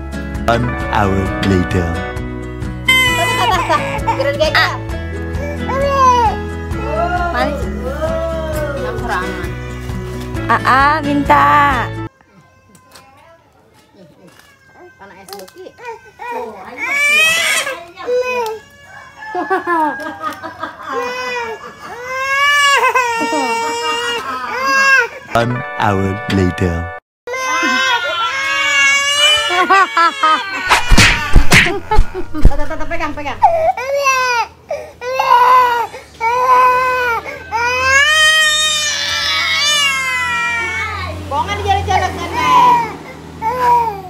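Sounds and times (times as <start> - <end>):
baby crying: 2.9 - 4.7, 5.3 - 8.4, 14.2 - 19.1, 20.9 - 25.4, 27.3 - 32.6, 33.4 - 41.2, 42.4 - 44.0.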